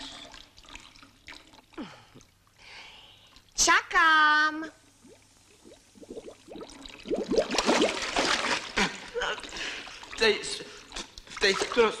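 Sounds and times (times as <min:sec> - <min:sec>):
air bubbling through bathwater: 0:05.0 - 0:08.9.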